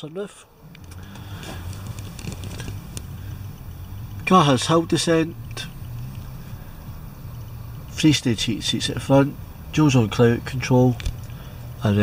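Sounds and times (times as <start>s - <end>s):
car engine idling: 0.4s - 12.0s
faint clicks: 5.4s - 6.3s.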